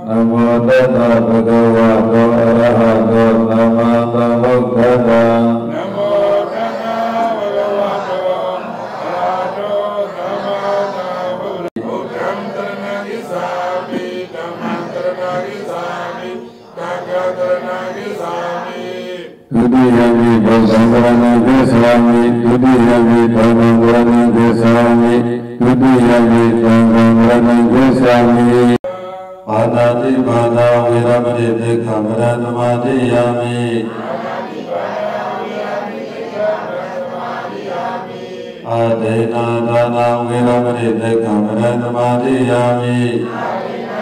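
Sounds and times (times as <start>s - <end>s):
deep loud chant: 0.0s - 44.0s
voices chanting prayer: 0.0s - 44.0s.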